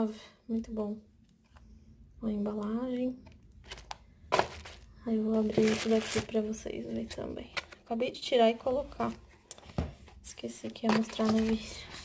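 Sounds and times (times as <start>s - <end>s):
packaging rustle and knock: 3.6s - 6.4s.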